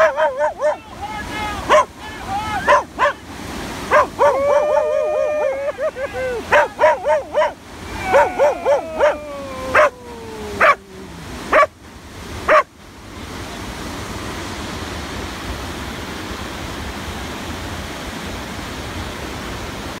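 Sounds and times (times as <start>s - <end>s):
dog barking: 0.0s - 0.8s, 1.6s - 1.9s, 2.6s - 3.2s, 3.9s - 4.9s, 6.4s - 10.0s, 10.6s - 10.8s, 11.5s - 11.7s, 12.5s - 12.7s
river rapid rushing: 0.0s - 20.0s.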